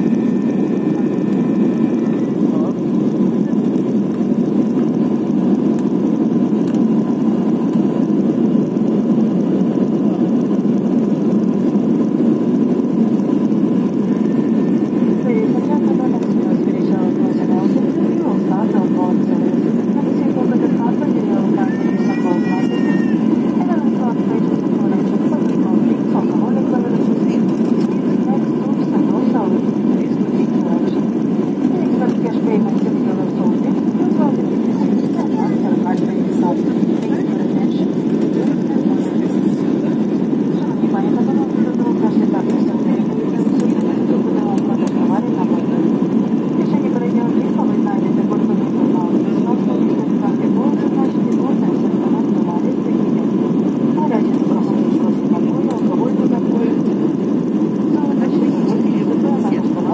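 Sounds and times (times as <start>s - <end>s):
faint passenger voices: 0.0s - 59.9s
rush of engines and airflow: 23.1s - 59.3s.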